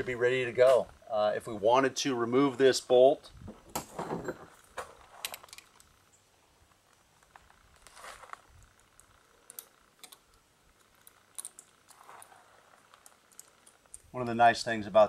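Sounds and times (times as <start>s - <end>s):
small metallic clicks: 5.1s - 6.0s, 8.3s - 14.2s.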